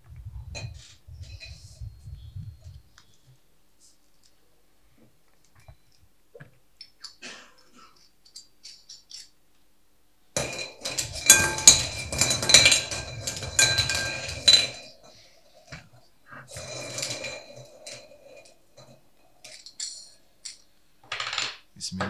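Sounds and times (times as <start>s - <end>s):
balls rattling in glass bowl: 10.4s - 15.8s, 16.4s - 21.6s.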